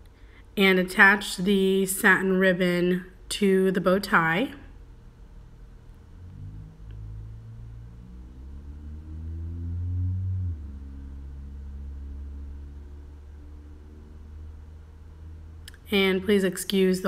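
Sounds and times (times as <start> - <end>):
low mechanical hum with tones: 0.0 - 17.0.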